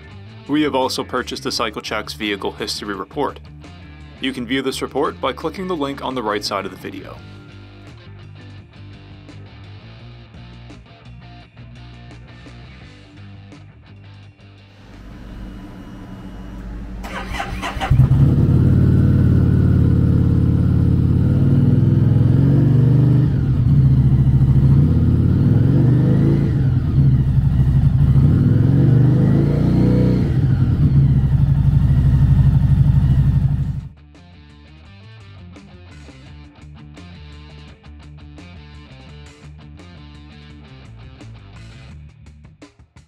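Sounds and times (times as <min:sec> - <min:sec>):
motorcycle engine idling and revving: 0:14.8 - 0:34.0
motorcycle starter cranking: 0:16.5 - 0:18.7.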